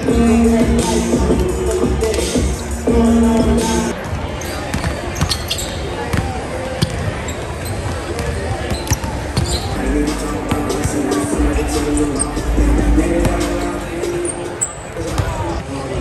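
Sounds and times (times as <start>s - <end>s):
background music: 0.0s - 4.0s, 9.8s - 14.6s
crowd chatter: 0.0s - 16.0s.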